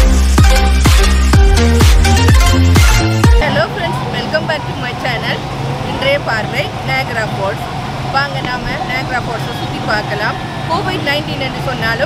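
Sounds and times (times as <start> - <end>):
busy street noise: 0.0 - 12.0
woman speaking: 3.4 - 12.0.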